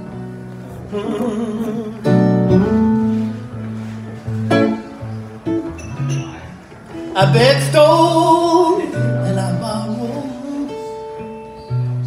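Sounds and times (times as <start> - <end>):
guitar chords: 0.0 - 12.0.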